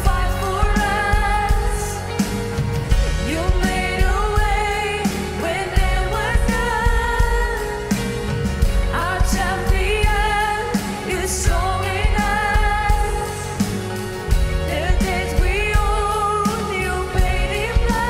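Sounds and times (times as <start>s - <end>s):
drum kit and band: 0.0s - 18.0s
women singing slow melody: 0.0s - 18.0s.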